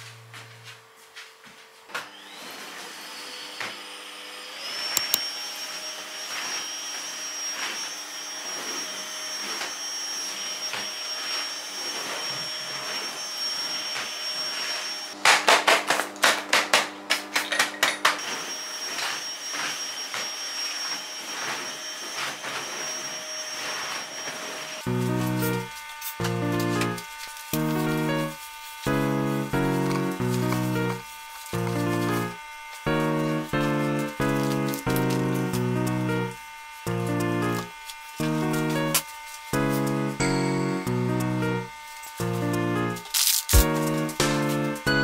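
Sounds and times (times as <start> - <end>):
vacuum cleaner motor whine: 0.0 - 45.0.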